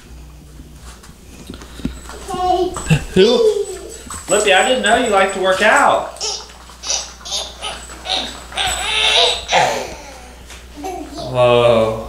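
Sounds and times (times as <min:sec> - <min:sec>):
breathy laughter: 0:07.6 - 0:10.4.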